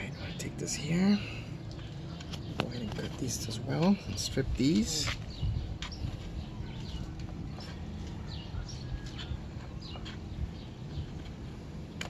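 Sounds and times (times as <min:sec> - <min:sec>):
birds chirping: 0:00.0 - 0:12.0
low steady rumble: 0:00.0 - 0:12.0.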